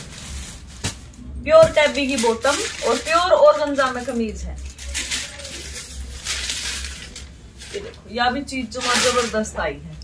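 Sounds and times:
fabric rustling and crinkling: 0:00.0 - 0:09.6.

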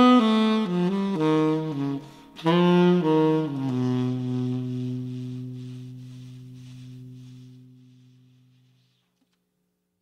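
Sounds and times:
saxophone: 0:00.0 - 0:09.0.

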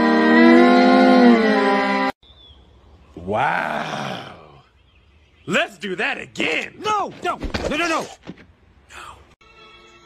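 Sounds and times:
drawn-out vocal groan: 0:03.2 - 0:04.7.

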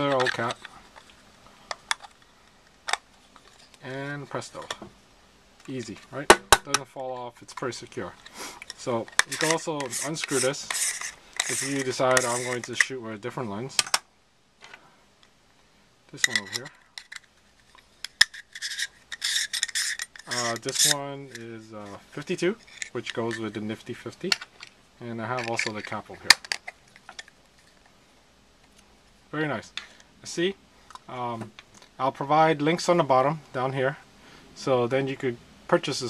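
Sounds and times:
man speaking: 0:00.0 - 0:00.8, 0:03.8 - 0:04.9, 0:05.6 - 0:08.2, 0:08.8 - 0:10.8, 0:11.4 - 0:13.9, 0:16.1 - 0:16.8, 0:20.3 - 0:24.4, 0:25.0 - 0:26.4, 0:29.3 - 0:34.0, 0:34.6 - 0:36.0
faint handling ticks: 0:07.2 - 0:12.9, 0:16.1 - 0:28.0
threads rasping against each other: 0:07.5 - 0:12.9, 0:16.2 - 0:27.9.

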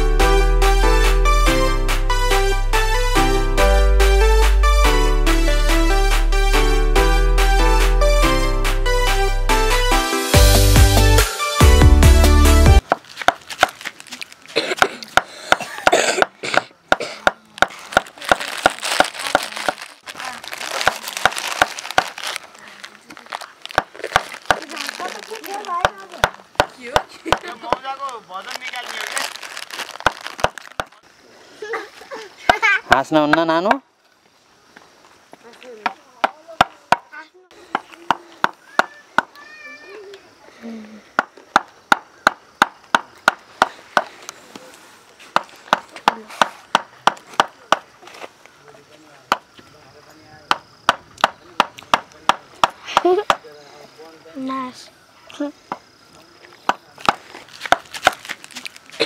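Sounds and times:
music: 0:00.0 - 0:12.8.

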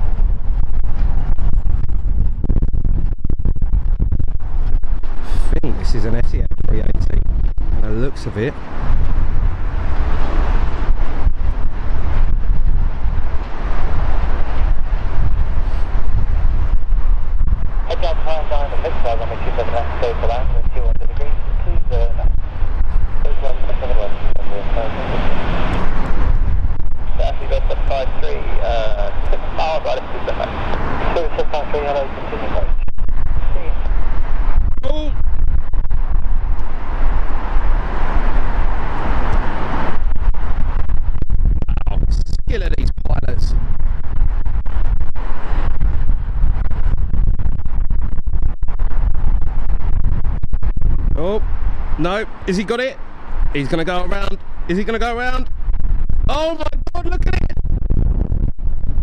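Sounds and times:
wind rumbling on microphone: 0:00.0 - 0:59.0
jet engines droning: 0:04.3 - 0:57.6
people talking: 0:05.3 - 0:07.2, 0:07.8 - 0:08.6, 0:17.9 - 0:22.3, 0:23.2 - 0:25.0, 0:27.2 - 0:32.8, 0:33.4 - 0:33.8, 0:34.8 - 0:35.2, 0:41.7 - 0:43.5, 0:51.2 - 0:51.4, 0:52.0 - 0:53.0, 0:53.6 - 0:55.5, 0:56.3 - 0:57.6.

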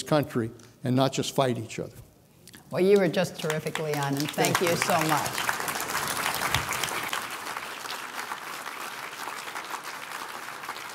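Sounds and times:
audience applauding: 0:03.0 - 0:10.9.

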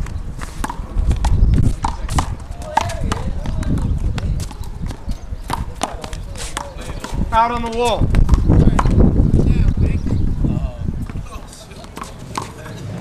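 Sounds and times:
sneakers scuffing on concrete: 0:00.0 - 0:07.8.

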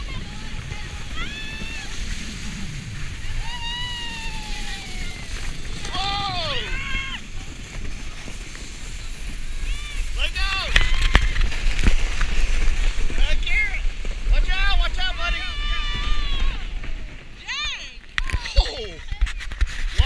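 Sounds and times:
wind rumble on microphone: 0:00.0 - 0:17.4
people screaming and whooping: 0:00.8 - 0:02.3, 0:03.1 - 0:07.4, 0:09.6 - 0:11.7, 0:15.3 - 0:19.1.

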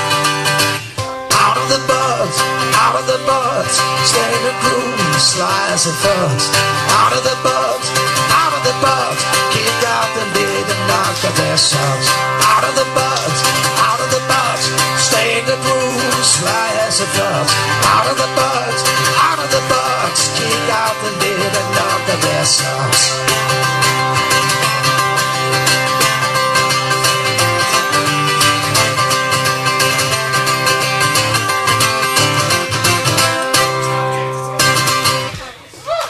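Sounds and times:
acoustic guitar strumming: 0:00.0 - 0:35.7.

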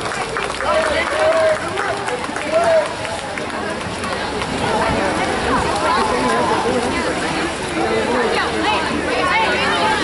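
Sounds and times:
distant voices: 0:00.0 - 0:10.0
people shouting and calling out: 0:00.5 - 0:10.0.

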